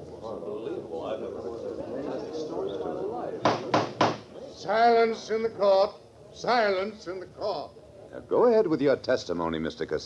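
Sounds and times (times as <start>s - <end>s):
gavel knocks: 3.4s - 4.3s.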